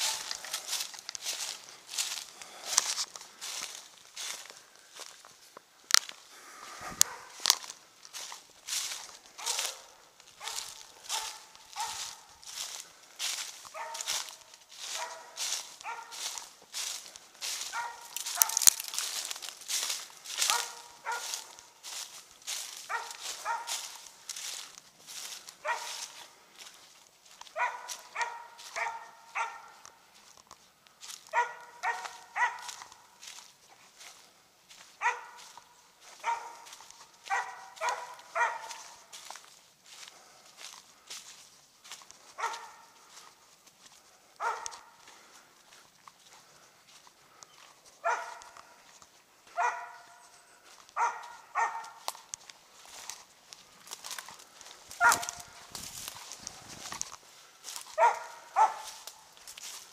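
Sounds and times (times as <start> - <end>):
dog barking: 0.0 - 1.5, 6.8 - 26.3, 27.4 - 30.0, 31.1 - 33.5, 34.9 - 39.4, 42.3 - 43.3, 44.4 - 45.1, 48.0 - 48.9, 49.5 - 52.3, 54.9 - 55.7, 57.8 - 59.3
footsteps crunching dry leaves: 0.0 - 59.9.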